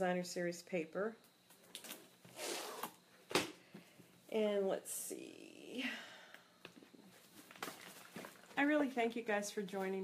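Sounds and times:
paper rustling: 7.2 - 8.6.

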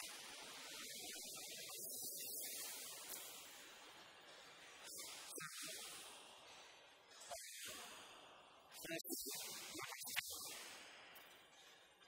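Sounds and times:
room tone hiss: 0.0 - 11.4
soft breathing: 2.4 - 8.8, 10.4 - 12.0.

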